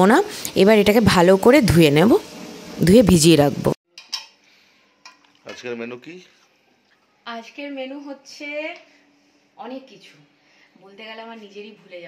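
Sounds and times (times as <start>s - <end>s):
woman's voice: 0.0s - 2.2s, 2.8s - 3.8s, 9.6s - 12.0s
steel bowl and utensil clinks: 3.9s - 4.4s, 5.0s - 5.4s.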